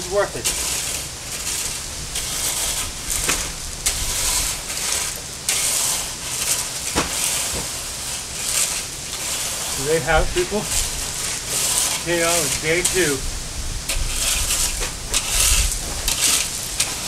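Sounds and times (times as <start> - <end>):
rake scraping gravel: 0.0 - 17.0.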